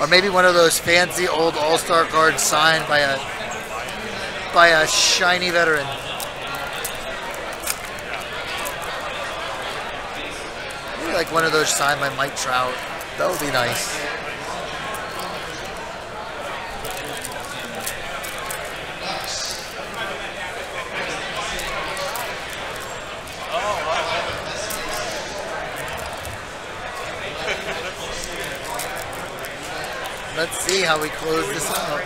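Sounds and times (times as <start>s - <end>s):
chatter of many voices: 0.0s - 32.0s
foil wrapper crinkling and tearing: 1.7s - 32.0s.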